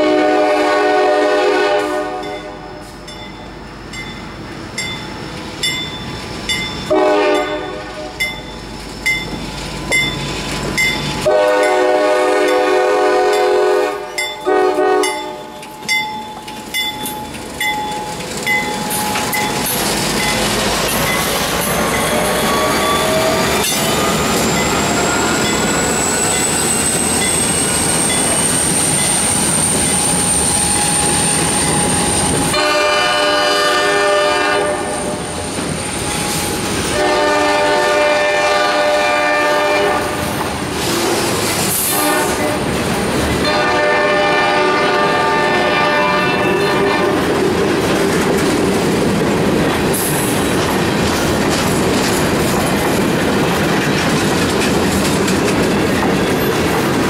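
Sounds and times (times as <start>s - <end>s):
locomotive horn blasts: 0.0s - 2.8s, 6.9s - 8.2s, 11.2s - 15.5s, 32.5s - 35.2s, 36.9s - 42.7s, 43.4s - 47.2s
freight train rumbling on rails: 0.0s - 57.0s
high wheel squeal: 15.3s - 32.6s, 34.8s - 37.1s.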